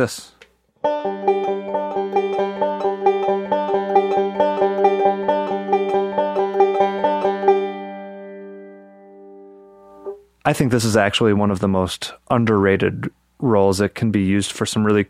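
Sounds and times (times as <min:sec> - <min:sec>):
banjo picking a roll: 0:00.8 - 0:08.7.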